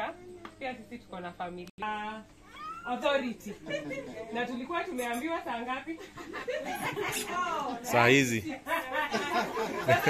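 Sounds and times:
woman speaking into a microphone: 0.0 - 6.0, 6.8 - 9.3.

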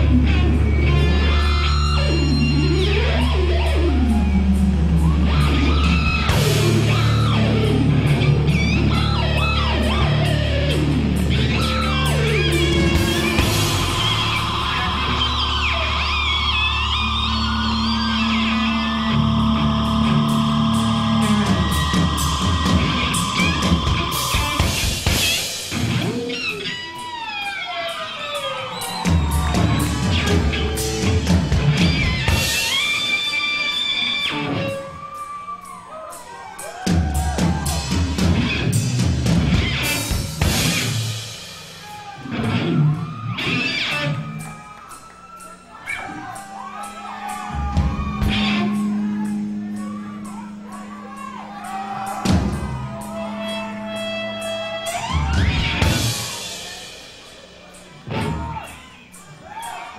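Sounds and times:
distorted electric guitar feedback: 0.0 - 35.6, 37.0 - 59.3.

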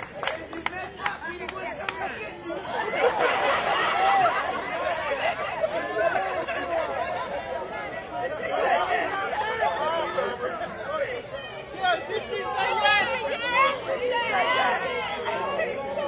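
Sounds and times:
excited crowd chatter: 0.0 - 16.0.

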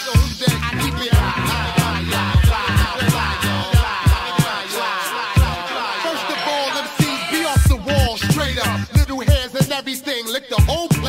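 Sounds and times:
rapping over a beat: 0.0 - 11.0.

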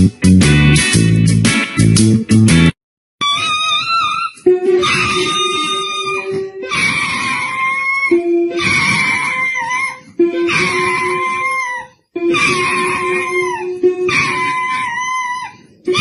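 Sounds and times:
dog howling: 3.2 - 16.0
toy keyboard long notes: 3.5 - 16.0.

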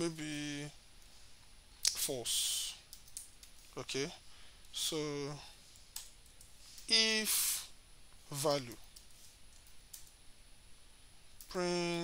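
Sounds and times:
person speaking: 0.0 - 0.8, 1.8 - 3.0, 3.6 - 5.7, 6.6 - 9.1, 11.4 - 12.0.

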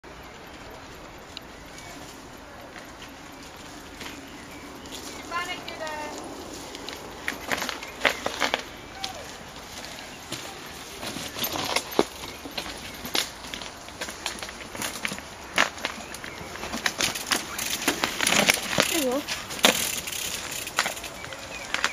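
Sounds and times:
bike tyres crunching over stones: 0.1 - 21.9
bike rattling over rock: 0.4 - 21.9.

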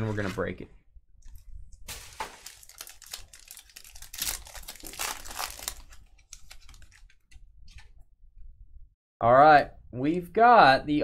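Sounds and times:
plastic packaging crinkling and tearing: 1.3 - 7.3.

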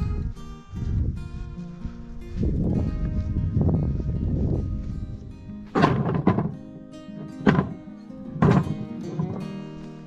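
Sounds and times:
background music: 5.4 - 10.0
logs thudding onto plywood: 5.7 - 6.6, 7.2 - 9.5.

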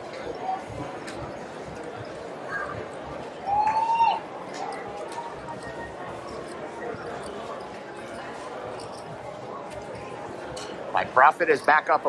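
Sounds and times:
murmur of background chatter: 0.0 - 12.0.

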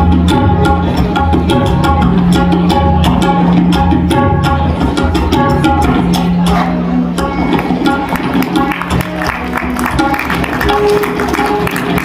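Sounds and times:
tabla drumming: 0.0 - 12.0.

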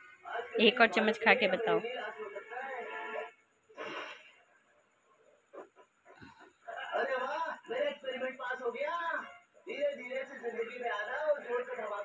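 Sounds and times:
person speaking: 0.6 - 1.8.

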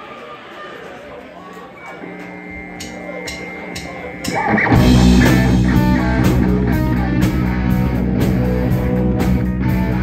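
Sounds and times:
steady held amplifier tone: 1.7 - 7.9
drumstick count-in ticks: 2.2 - 5.0.

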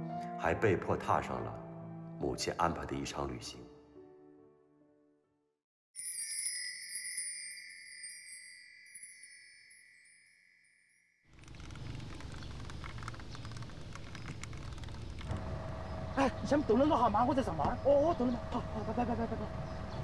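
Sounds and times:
shimmering chime: 6.0 - 11.2
street noise with low rumble: 11.4 - 20.0.

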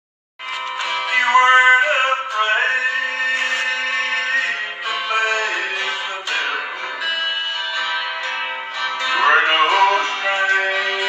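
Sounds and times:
acoustic guitar: 0.4 - 11.0
man singing gospel song: 1.0 - 7.2, 9.0 - 11.0.

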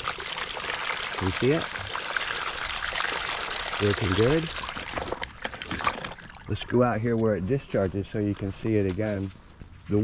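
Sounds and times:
water pouring into basin: 0.0 - 6.7.

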